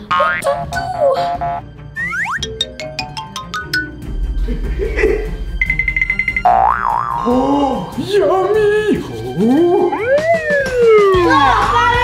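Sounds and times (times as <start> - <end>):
background music: 0.0 - 12.0
wobbling boing: 6.2 - 7.3.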